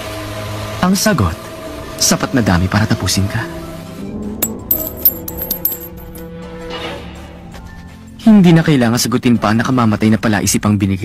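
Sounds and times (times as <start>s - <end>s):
sustained background music: 0.4s - 10.7s
metallic clinks of coins: 4.4s - 6.2s.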